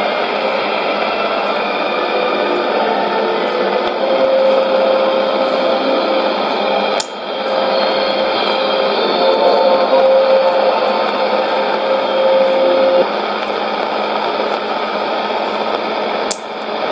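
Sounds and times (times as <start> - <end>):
low steady whistle: 0.0 - 16.9
radio band noise and hiss: 0.0 - 16.9.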